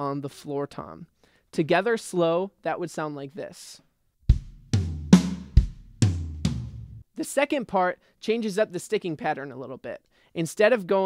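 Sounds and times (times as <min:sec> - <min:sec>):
kick drum: 0:04.3 - 0:06.9
rack tom strokes: 0:04.3 - 0:07.0
snare drum stroke: 0:04.4 - 0:06.9.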